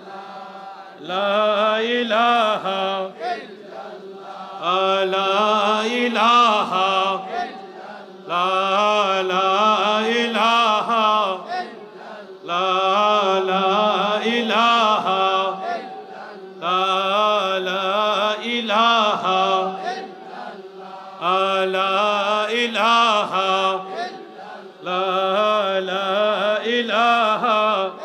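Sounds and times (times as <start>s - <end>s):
man chanting: 1.0s - 3.5s, 4.6s - 28.0s.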